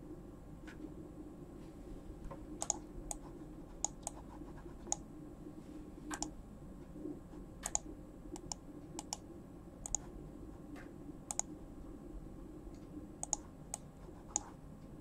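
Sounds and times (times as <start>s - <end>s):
steady low hum: 0.0s - 15.0s
computer mouse clicks: 2.6s - 4.2s, 6.1s - 6.3s, 7.6s - 9.2s, 9.8s - 10.1s, 11.3s - 11.5s, 13.2s - 14.5s.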